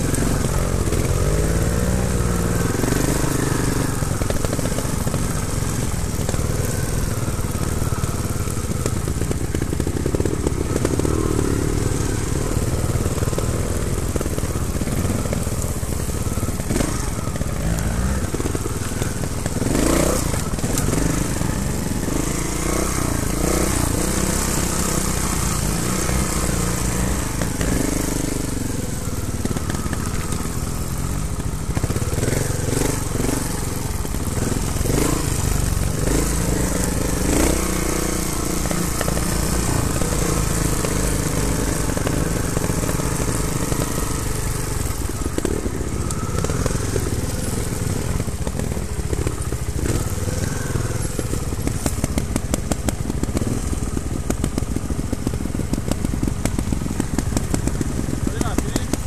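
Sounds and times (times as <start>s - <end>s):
motorcycle engine revving: 0.0s - 59.0s.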